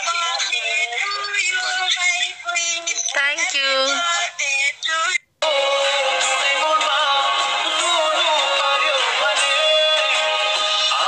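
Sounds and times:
background music with melody: 5.4 - 11.0.

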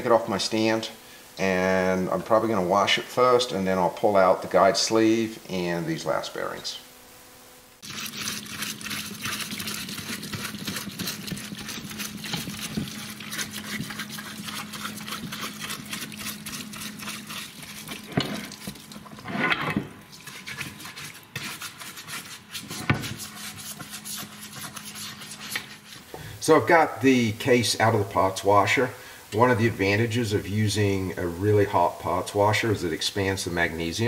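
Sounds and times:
steady low hum: 0.0 - 34.0
fluid splashing in parts washer: 7.8 - 30.1.

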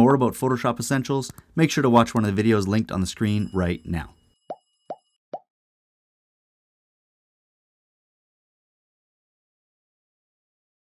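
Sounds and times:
faint high ringing tones: 2.8 - 5.2.

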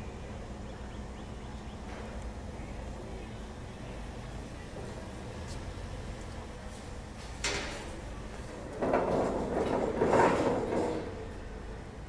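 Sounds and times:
metal rattling and scraping: 7.2 - 11.4.

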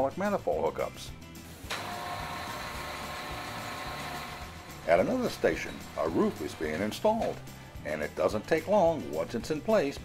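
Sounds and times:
soft background music: 0.0 - 10.0
factory machine whirring: 1.6 - 7.3.

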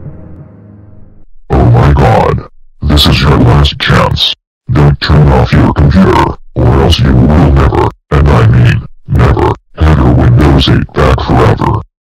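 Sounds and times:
distorted low growling voice: 1.5 - 11.9.

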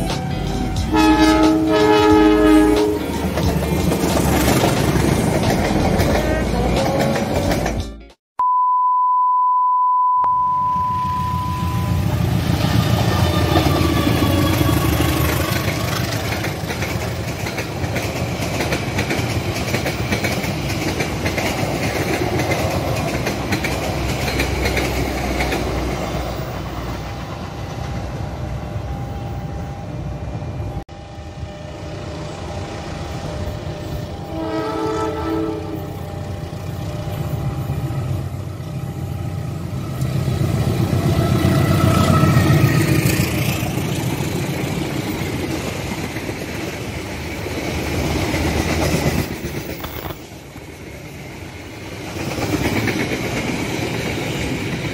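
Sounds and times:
train wheels rumbling on rails: 0.0 - 8.0, 11.8 - 54.9
diesel train approaching: 0.0 - 8.2, 10.4 - 54.9
locomotive horn: 0.3 - 3.6, 34.0 - 37.3.

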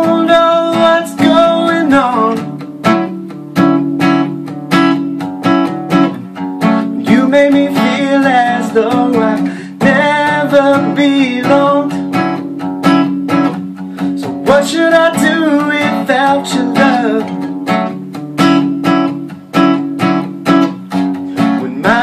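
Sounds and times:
acoustic guitar strummed: 0.0 - 22.0.

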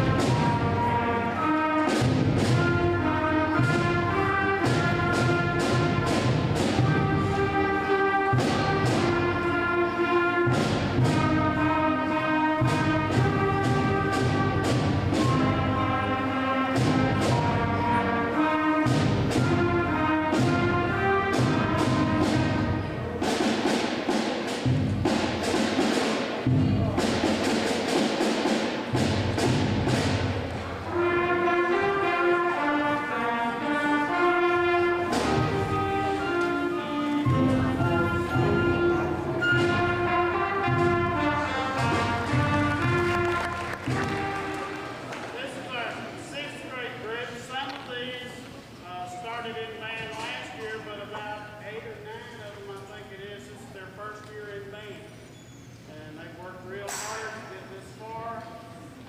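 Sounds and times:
steady drum beat: 0.0 - 31.4, 34.2 - 45.1
heavy percussion: 0.0 - 47.0
concert band playing: 0.0 - 51.2.

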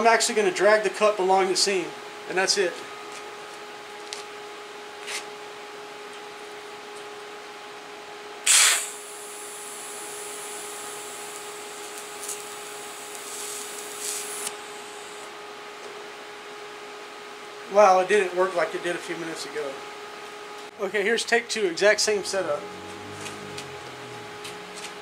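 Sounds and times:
steady low hum: 0.0 - 25.0
welding arc whine: 8.4 - 15.4, 21.1 - 25.0
welder start crackle: 8.5 - 15.2.

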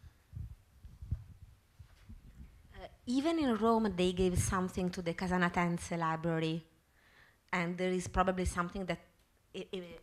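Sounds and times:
microphone handling thumps: 0.3 - 2.7.

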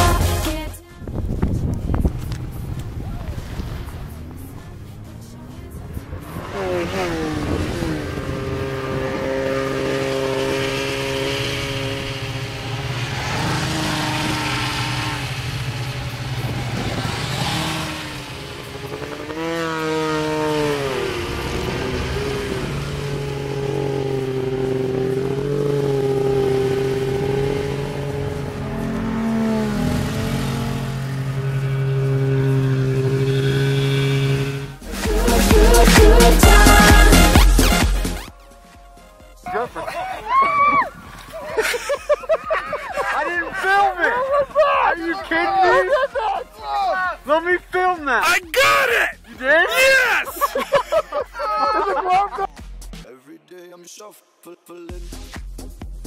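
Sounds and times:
snowmobile engines revving: 1.6 - 38.3, 39.4 - 52.6.

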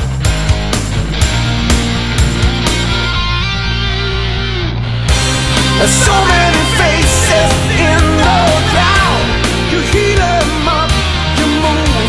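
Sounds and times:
distorted electric guitar chords: 0.0 - 12.0.

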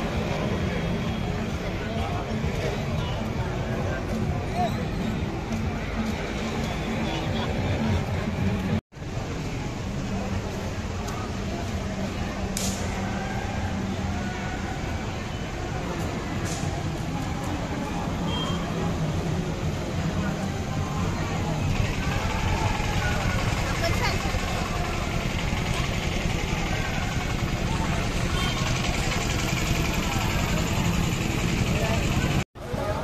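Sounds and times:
many people's voices: 0.0 - 33.0
vehicle engines running: 0.0 - 33.0.

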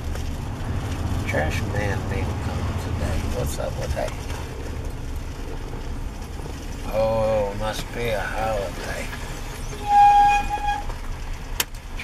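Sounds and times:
vehicle cabin hum: 0.0 - 12.0.

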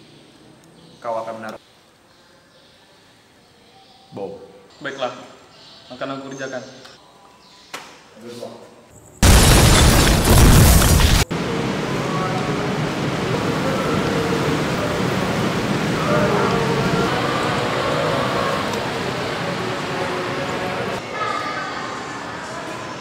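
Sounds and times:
background noise: 0.0 - 23.0
explosion sound effect: 9.2 - 11.6
faint indistinct voices: 11.8 - 23.0.

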